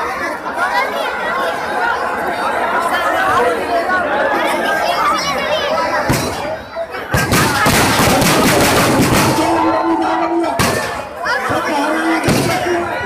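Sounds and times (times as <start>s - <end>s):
large crowd chattering: 0.0s - 13.0s.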